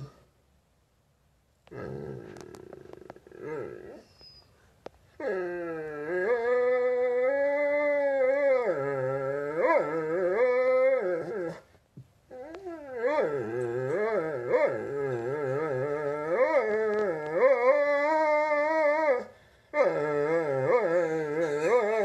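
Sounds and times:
dog growling: 1.7s - 4.1s, 12.3s - 18.9s, 19.8s - 22.0s
dog howling whine: 5.2s - 11.6s, 12.3s - 22.0s.

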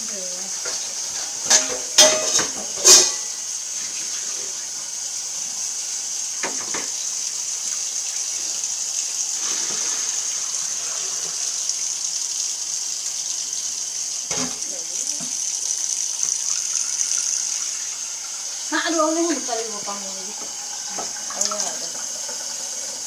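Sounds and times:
faucet running into a sink: 0.0s - 23.0s.

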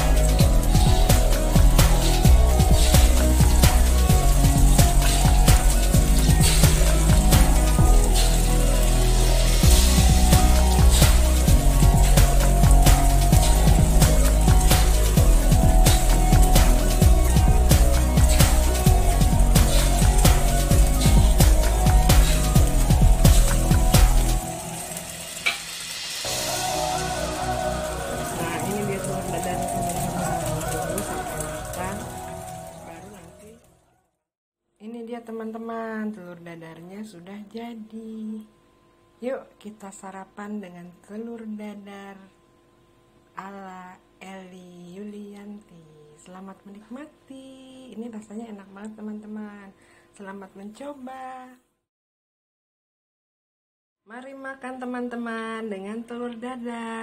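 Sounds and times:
deep bass hits falling: 0.0s - 24.6s
electronic music with beat: 0.0s - 25.1s, 26.2s - 33.2s
omelette sizzling in oil: 0.0s - 33.6s.

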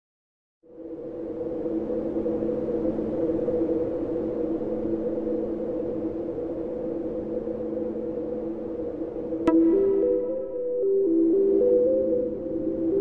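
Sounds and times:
low rumbling noise: 0.8s - 13.0s
synthesizer drone chord: 9.5s - 13.0s.

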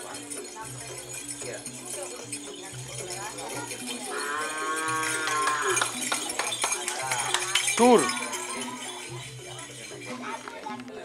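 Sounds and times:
cow mooing: 4.1s - 5.9s.

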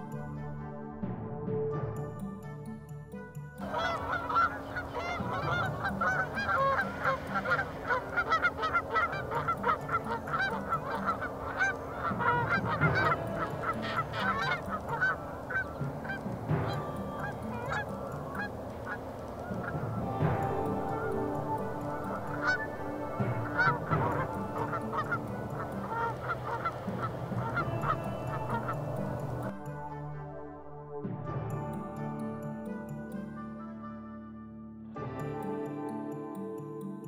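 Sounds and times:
geese honking: 3.6s - 29.7s.

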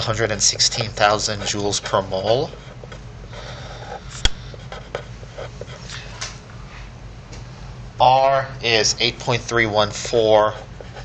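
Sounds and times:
steady low hum: 0.0s - 11.0s
pen scratching on paper: 0.6s - 3.0s, 3.8s - 5.8s, 10.4s - 11.0s.

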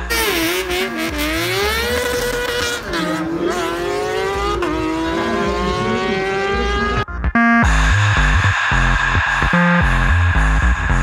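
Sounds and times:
motorcycle engine revving hard: 0.1s - 7.0s.

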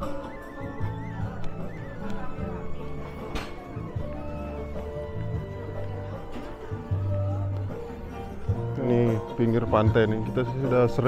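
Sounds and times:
high wavering melody: 0.0s - 8.4s.

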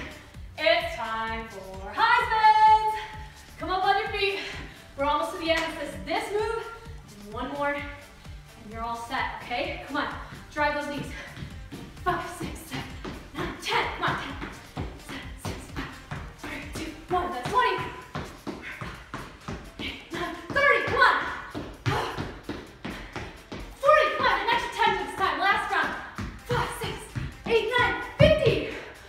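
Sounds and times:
music with singing: 0.0s - 29.0s
sneakers thumping on wooden floor: 11.1s - 28.8s.

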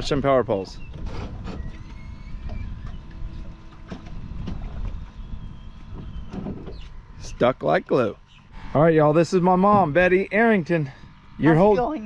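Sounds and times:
faint mechanical whine: 0.0s - 12.0s.

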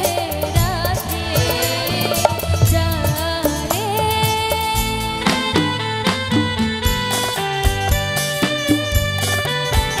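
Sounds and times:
woman singing: 0.0s - 6.4s
band accompaniment: 0.0s - 10.0s
steady percussion beat: 0.0s - 10.0s.

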